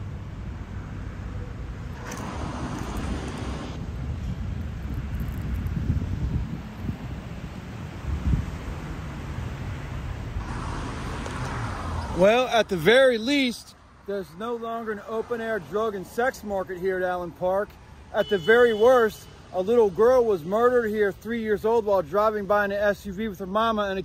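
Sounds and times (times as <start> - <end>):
road traffic: 0.0 - 24.0
wind on microphone: 2.0 - 12.2.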